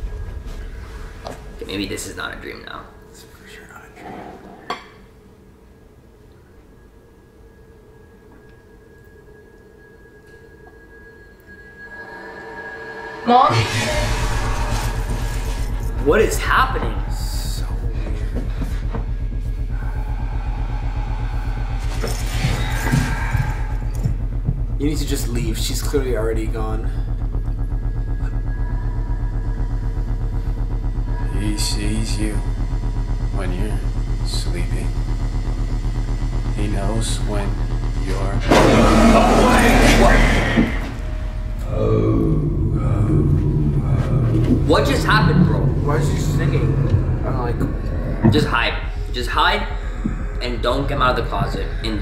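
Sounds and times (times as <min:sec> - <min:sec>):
low pulsing throb: 0:00.0 - 0:03.9, 0:04.8 - 0:52.0
low eerie drone: 0:00.0 - 0:52.0
thin high tone: 0:06.9 - 0:18.4.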